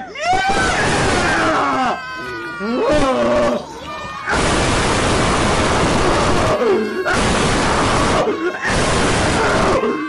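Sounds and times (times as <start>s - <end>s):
comic vomiting sound effect: 0.0s - 10.0s
voice crying out: 0.0s - 10.0s.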